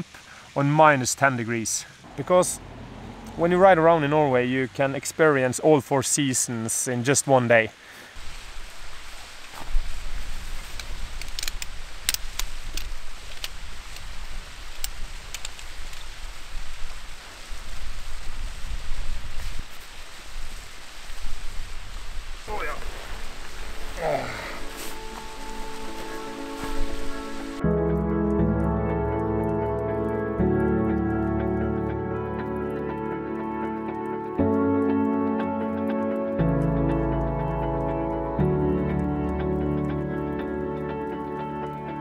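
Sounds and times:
waterfall rushing: 0.0 - 5.6, 13.1 - 27.6
camping gear clicks and rustles: 9.2 - 20.5, 22.5 - 27.6
low wind rumble on microphone: 9.6 - 24.0.

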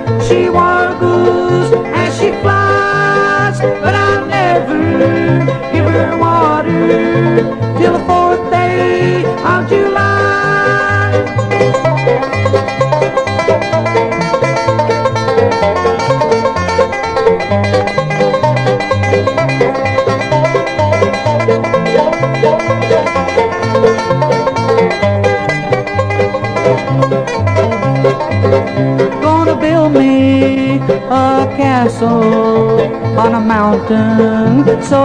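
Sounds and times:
bass line: 0.0 - 35.0
plucked string picking: 0.0 - 35.0.

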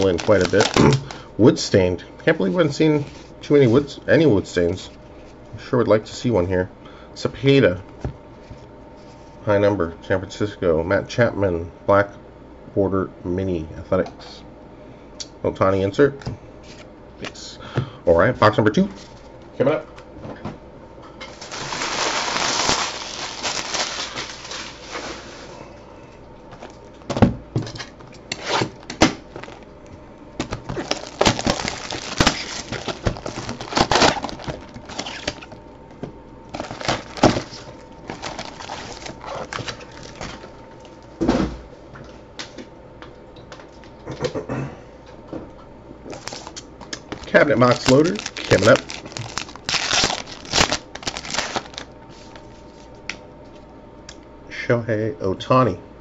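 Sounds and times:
rustling of packs: 0.0 - 1.3, 21.3 - 25.5, 28.5 - 29.7, 30.4 - 35.6, 36.5 - 41.1, 46.1 - 52.8.

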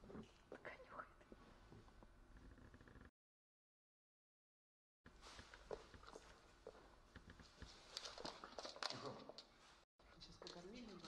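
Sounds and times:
faint whispering: 0.5 - 1.4.

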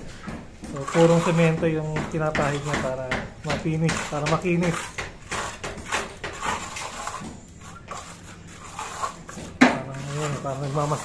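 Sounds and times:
trowel scraping wet cement: 0.7 - 11.0.

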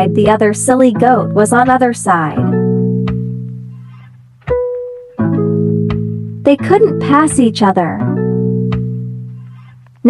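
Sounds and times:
plucked string notes: 0.0 - 10.0.

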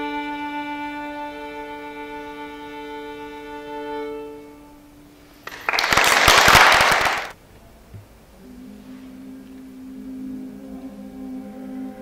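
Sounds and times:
audience applauding: 5.4 - 7.4.

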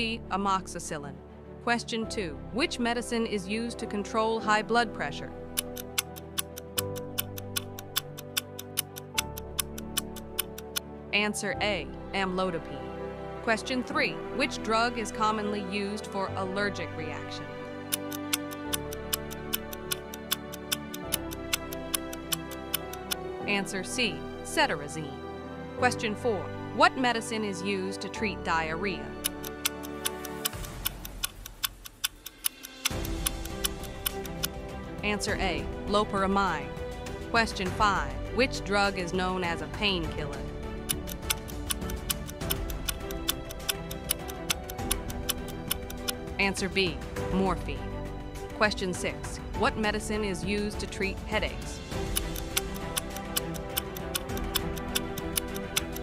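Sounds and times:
background music with sustained notes: 0.0 - 56.0
clock ticking: 5.4 - 10.8, 17.9 - 23.2, 29.1 - 34.6, 40.8 - 46.2, 51.5 - 56.0.

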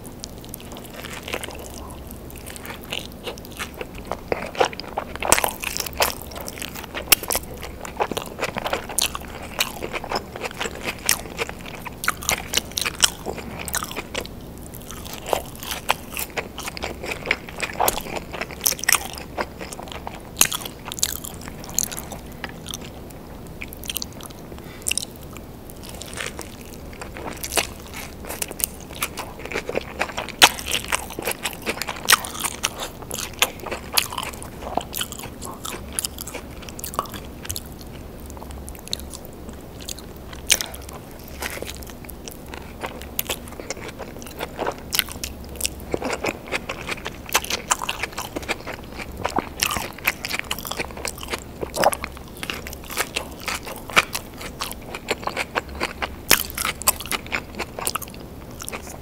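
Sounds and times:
crunchy chewing: 0.0 - 59.0.

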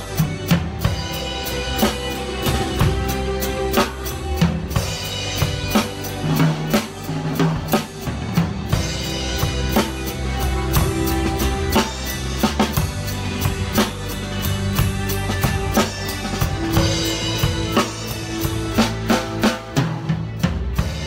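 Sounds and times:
drum kit playing: 0.0 - 21.0
instrumental pop backing track: 0.0 - 21.0.

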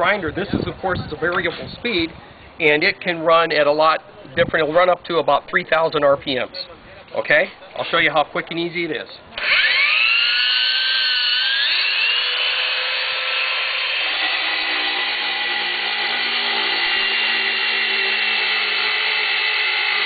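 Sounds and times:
core bit cutting stone: 9.4 - 20.0
grinder motor whine: 9.4 - 20.0.

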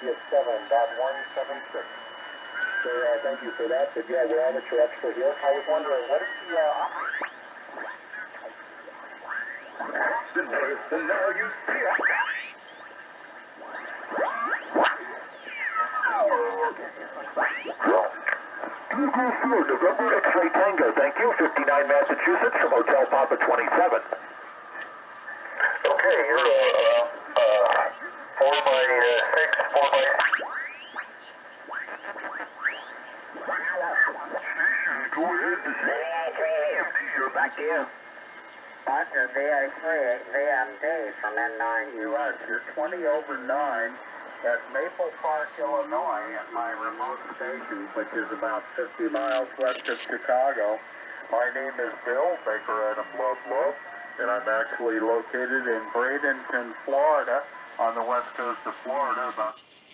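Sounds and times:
off-tune radio voices sweeping pitch: 0.0 - 24.2, 25.2 - 38.0, 38.8 - 59.6.

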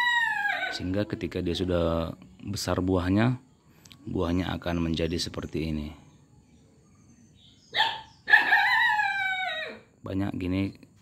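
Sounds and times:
rooster crowing: 0.0 - 1.1, 7.8 - 9.9.

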